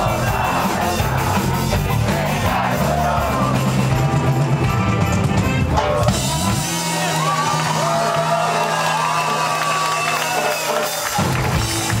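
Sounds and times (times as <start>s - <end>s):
drums: 0.0s - 12.0s
rock band held chord: 0.0s - 12.0s.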